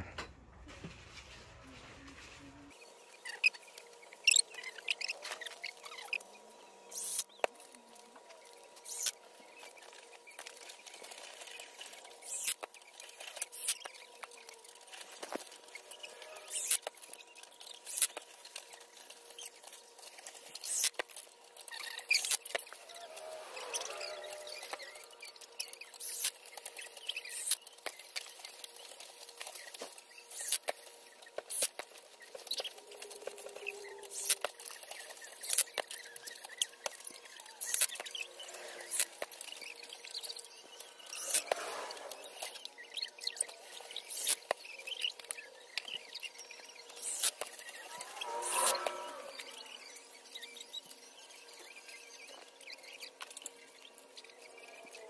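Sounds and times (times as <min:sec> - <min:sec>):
rustling: 0:00.0 - 0:02.8.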